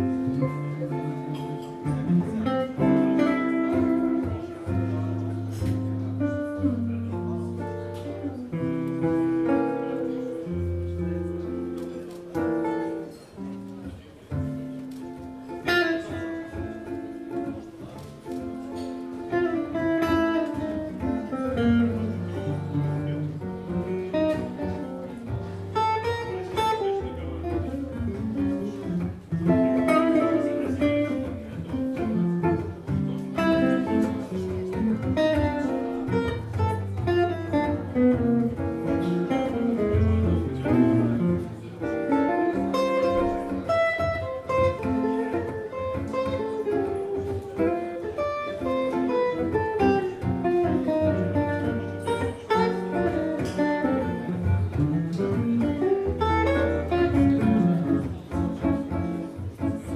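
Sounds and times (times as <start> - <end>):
amplified guitars playing: 0.0 - 59.9.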